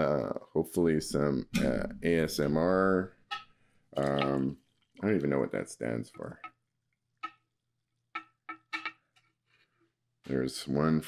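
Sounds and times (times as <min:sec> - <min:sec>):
glass carafe clinking on mugs: 0:04.0 - 0:04.5
coffee pouring: 0:04.0 - 0:05.6.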